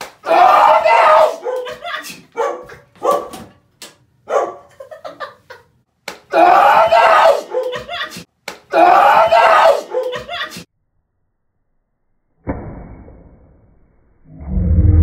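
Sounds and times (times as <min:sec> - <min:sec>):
man and woman laughing: 0:01.4 - 0:02.4, 0:04.6 - 0:05.8, 0:07.4 - 0:08.3, 0:09.8 - 0:10.7.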